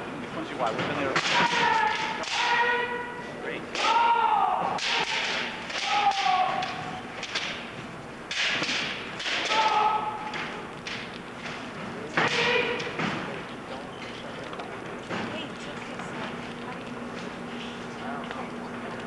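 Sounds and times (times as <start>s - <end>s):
fighters shouting: 1.2s - 7.1s, 9.2s - 10.6s, 12.1s - 13.0s
bamboo sword strikes: 4.8s - 7.6s, 8.3s - 11.0s.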